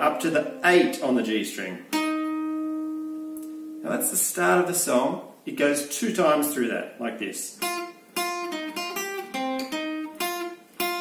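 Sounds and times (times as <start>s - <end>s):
acoustic guitar note plucked: 1.9s - 3.8s, 7.6s - 11.0s.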